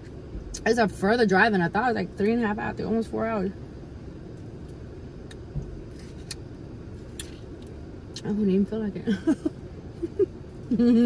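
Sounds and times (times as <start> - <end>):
low hum inside a car: 0.0 - 11.0.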